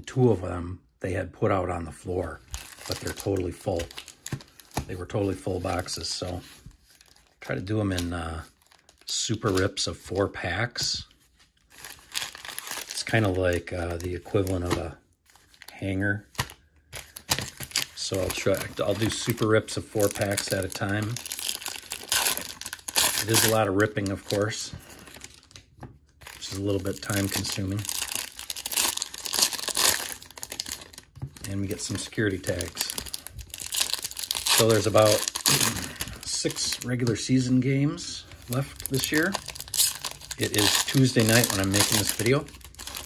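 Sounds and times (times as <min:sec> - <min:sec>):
foil wrappers crinkling: 0:02.4 - 0:09.8, 0:11.6 - 0:25.6, 0:26.2 - 0:37.6, 0:38.2 - 0:43.0.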